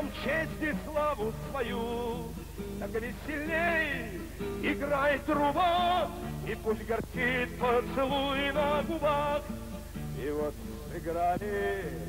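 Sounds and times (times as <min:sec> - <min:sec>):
man singing with vibrato: 0:00.0 - 0:12.0.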